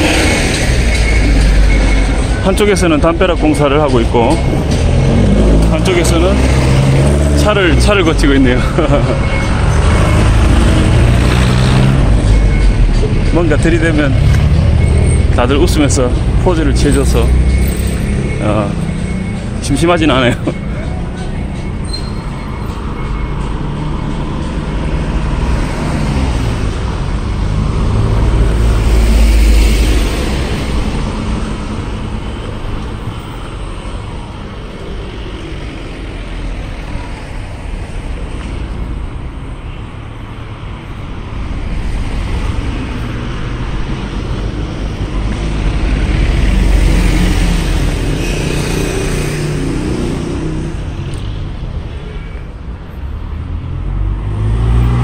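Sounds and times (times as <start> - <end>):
cars driving past: 0.0 - 55.0.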